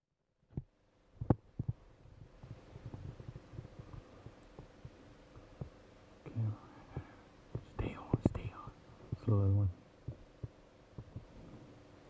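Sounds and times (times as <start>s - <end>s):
person whispering: 6.3s - 9.8s.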